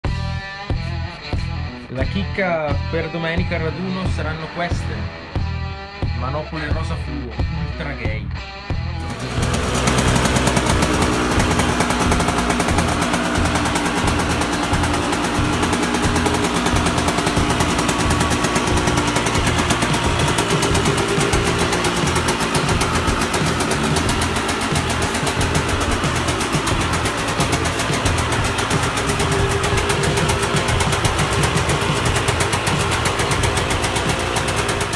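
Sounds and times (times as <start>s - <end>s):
two-stroke motorcycle engine running: 9.0s - 34.9s.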